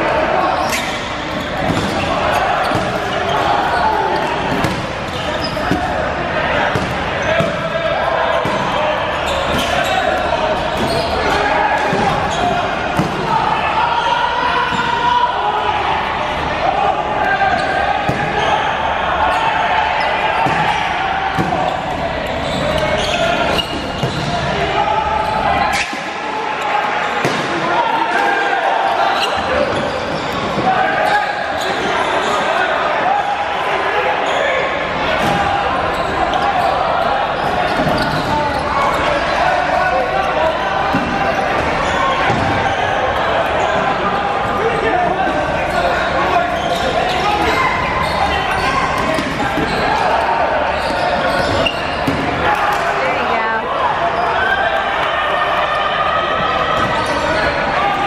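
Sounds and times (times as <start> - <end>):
players shouting: 0.0 - 58.0
balls hitting players: 0.6 - 14.0, 14.6 - 15.1, 17.6 - 18.6, 20.2 - 24.6, 27.1 - 28.6, 35.1 - 42.8, 46.6 - 53.0.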